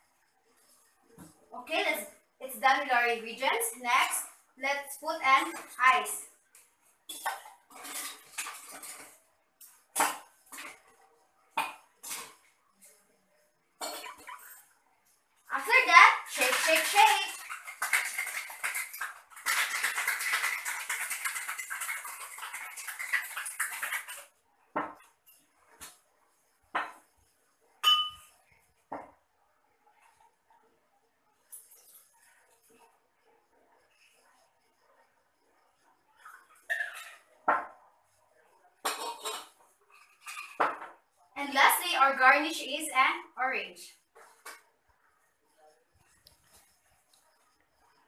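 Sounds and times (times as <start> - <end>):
ice clinking into metal shaker: 7.1 - 10.8, 15.6 - 24.3, 39.9 - 40.8
ice rattling in shaken shaker: 7.2 - 10.9, 15.5 - 24.4, 39.9 - 40.6.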